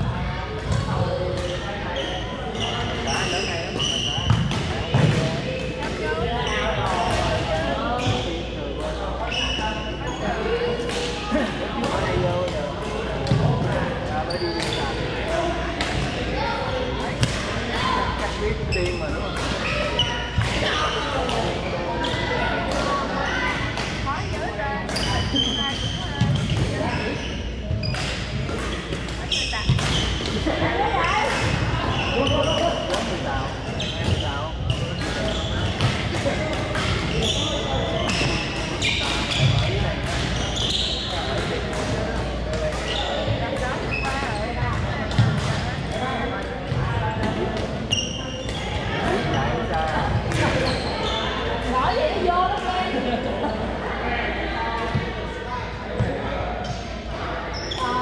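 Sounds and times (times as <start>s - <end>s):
chatter of voices: 0.0s - 58.0s.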